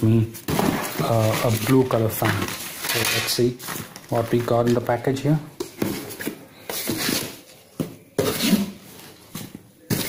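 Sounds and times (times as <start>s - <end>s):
cardboard and plastic rustling: 0.0s - 10.0s.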